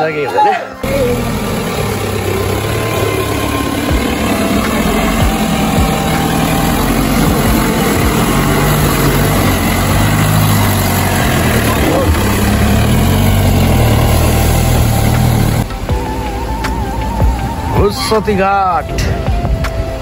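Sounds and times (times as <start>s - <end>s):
wheels spinning in mud: 0.8s - 15.6s
engine revving under load: 0.8s - 20.0s.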